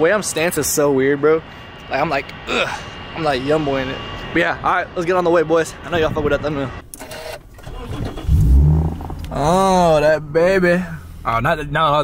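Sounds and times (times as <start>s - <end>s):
car engine starting and idling: 6.8s - 12.0s.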